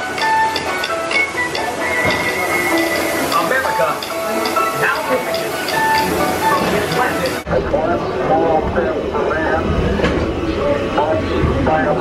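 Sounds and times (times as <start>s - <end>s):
ride vehicle rumbling: 0.0s - 12.0s
indistinct voices: 1.5s - 12.0s.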